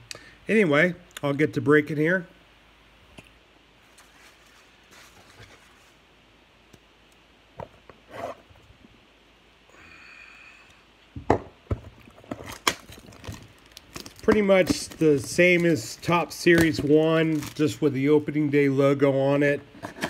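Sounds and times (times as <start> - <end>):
plastic shrink-wrap tearing: 12.4 - 17.8.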